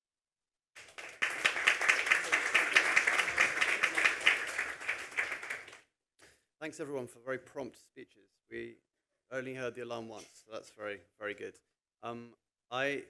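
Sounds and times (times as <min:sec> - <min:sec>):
audience applauding: 0:00.8 - 0:05.8.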